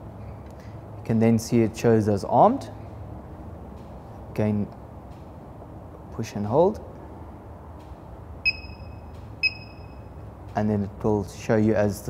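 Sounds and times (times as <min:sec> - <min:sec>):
high steady beep: 0:08.4 - 0:10.2.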